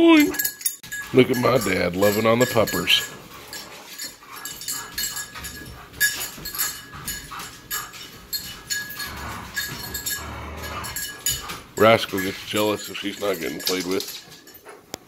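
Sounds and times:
collar tags jingling: 0.0 - 15.0
dogs scuffling: 0.4 - 15.0
claws clicking on tile floor: 3.0 - 15.0
dog grumbling low: 9.0 - 11.1.

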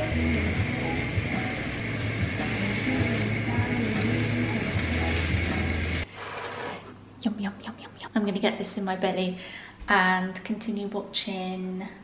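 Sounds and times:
soft background music: 0.0 - 6.1
vegetables sizzling in a wok: 0.0 - 6.7.

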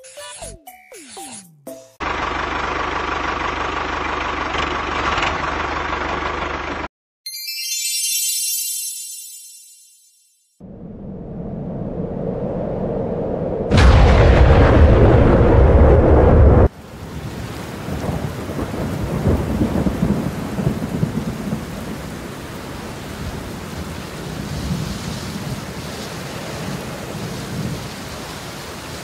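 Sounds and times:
thunder crack: 10.6 - 22.4
low thunder rumble: 10.6 - 28.0
steady rain: 16.4 - 29.0.

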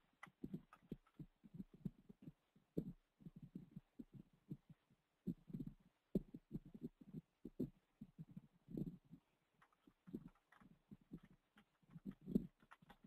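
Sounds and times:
computer keyboard typing: 9.6 - 13.0.

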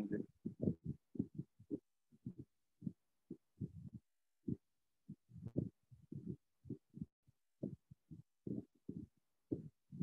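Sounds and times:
soft low thumps: 0.0 - 10.0.

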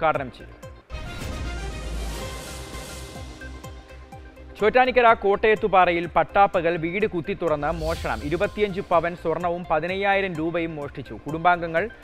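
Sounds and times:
brief hiss: 7.6 - 9.1.

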